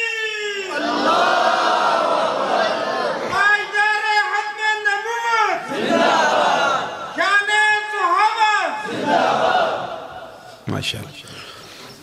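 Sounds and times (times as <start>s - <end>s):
mass of voices: 0.6s - 11.7s
crowd of men chanting: 0.7s - 3.4s, 5.6s - 7.2s, 8.8s - 10.4s.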